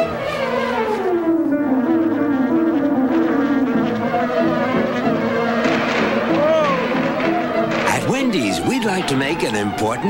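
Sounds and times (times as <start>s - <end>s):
bees buzzing: 0.0s - 10.0s.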